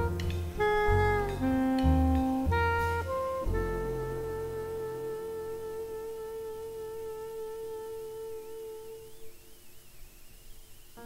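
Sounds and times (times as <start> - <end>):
low double-bass note: 0.0 - 9.2
soprano saxophone long note: 0.0 - 9.6.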